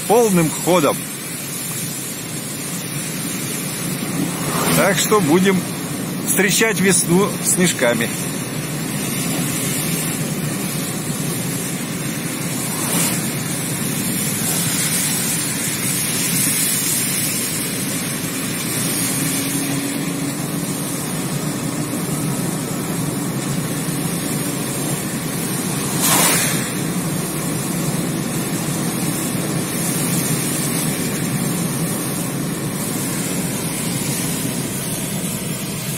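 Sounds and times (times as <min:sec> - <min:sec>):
car road noise: 0:00.0 - 0:35.9.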